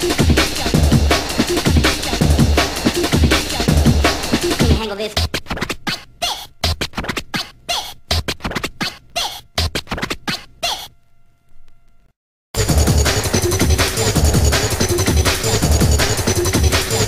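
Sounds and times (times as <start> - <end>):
breakbeat: 0.0 - 11.0, 12.6 - 17.0
quick turntable scratches: 0.0 - 11.0, 12.8 - 17.0.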